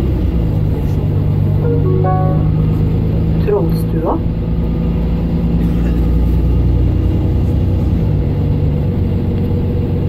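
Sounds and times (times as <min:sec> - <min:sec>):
bus diesel engine running: 0:00.0 - 0:10.0.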